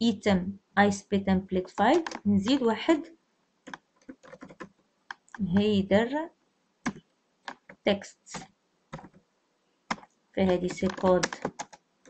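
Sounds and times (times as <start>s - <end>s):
computer keyboard keystrokes: 3.7s - 5.4s, 6.9s - 9.2s, 9.9s - 11.8s.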